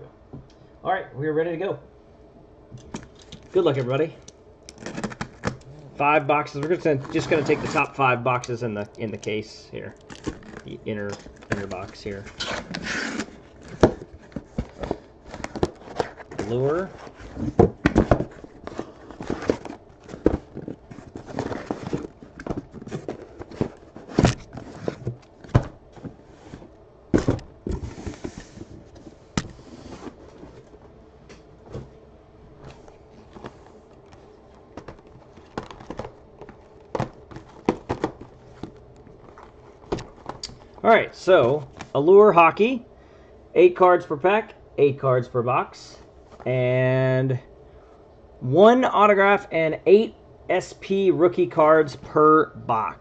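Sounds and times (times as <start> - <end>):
cardboard scraping: 4.8 - 8.0, 10.1 - 30.8, 32.6 - 40.5
cardboard boxes rustling: 4.8 - 8.2, 9.2 - 31.0, 31.6 - 40.8
cardboard boxes knocking: 27.1 - 27.8, 34.7 - 38.7.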